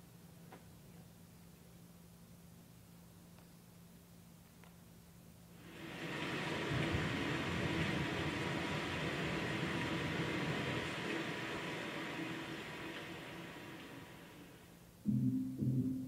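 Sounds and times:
rushing ambient noise over speakers: 5.5 - 16.0.

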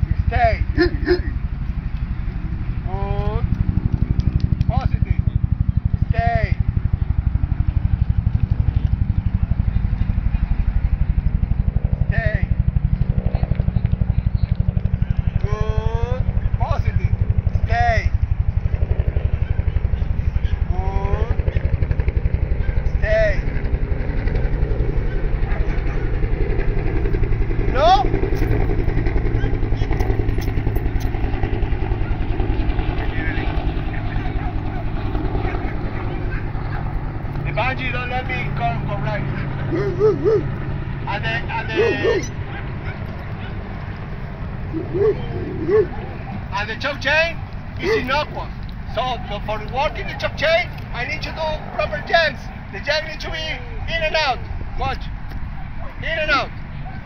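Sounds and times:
steady low rumble: 0.0 - 57.0
short rising and falling calls: 39.7 - 40.6, 41.7 - 42.6, 44.6 - 46.6.

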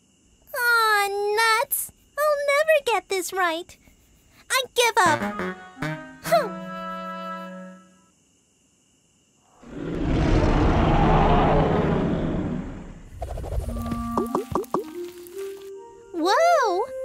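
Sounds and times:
light plucked music: 5.0 - 7.8, 13.7 - 17.0
cartoon dinosaur roaring: 9.6 - 13.0.

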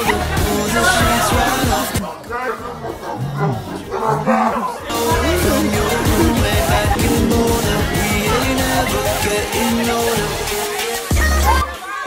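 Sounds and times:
background music: 0.0 - 12.0
man's low drawn-out calls: 2.6 - 10.4.

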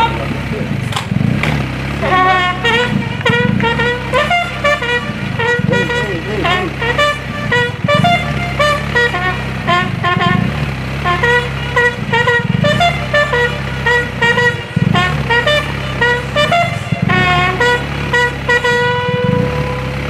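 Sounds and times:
brass band playing: 0.0 - 0.6, 1.4 - 20.0.

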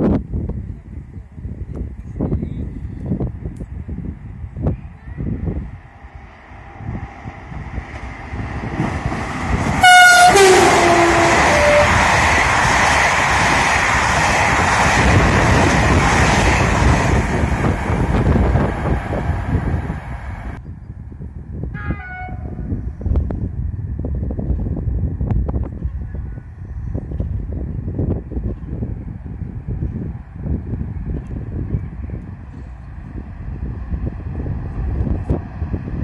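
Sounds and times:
train coaches rolling past: 0.8 - 20.6
locomotive horn: 9.8 - 12.0, 21.7 - 22.7.

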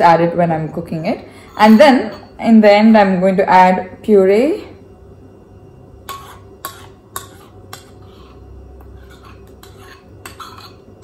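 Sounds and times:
metal spoon scraping ceramic bowl: 1.4 - 2.4, 6.1 - 11.0.

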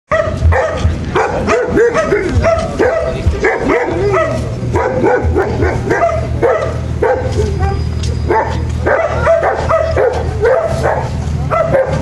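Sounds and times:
dog barking and yipping: 0.1 - 12.0.

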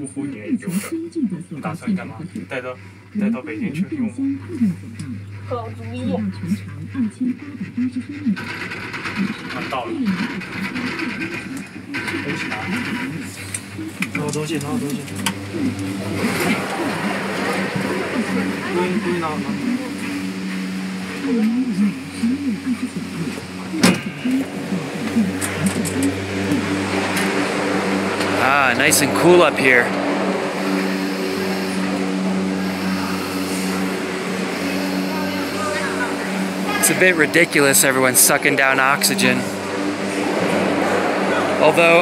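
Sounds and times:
faint voices: 0.0 - 42.0
low hum: 0.0 - 42.0
woman narrating: 0.8 - 2.5, 3.1 - 11.3, 15.4 - 20.1, 21.2 - 26.9, 32.6 - 36.5.

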